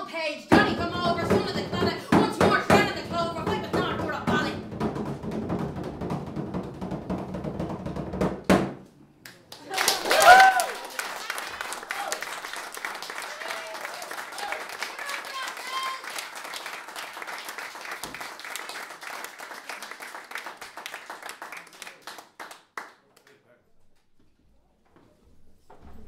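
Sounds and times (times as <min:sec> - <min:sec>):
woman's voice: 0:00.0 - 0:04.6
frame drum beaten: 0:00.5 - 0:08.8
rising and falling vocal cry: 0:09.9 - 0:10.8.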